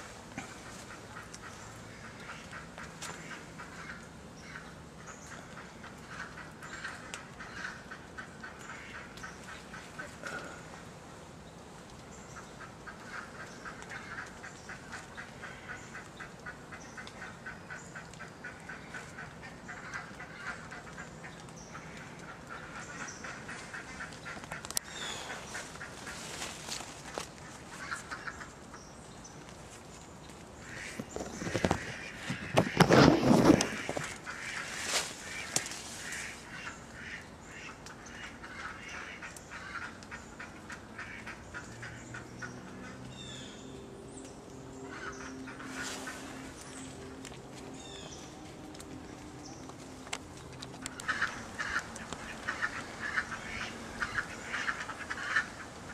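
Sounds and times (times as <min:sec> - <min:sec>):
rustling branches and leaves: 0:00.0 - 0:55.9.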